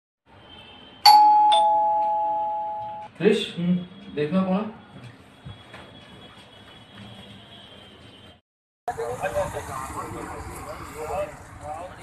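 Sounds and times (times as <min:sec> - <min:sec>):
two-tone doorbell chime: 0:01.0 - 0:03.1.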